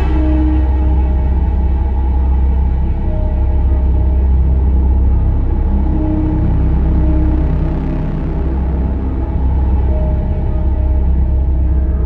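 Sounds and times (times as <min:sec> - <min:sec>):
dark ambient music drone: 0:00.0 - 0:12.0.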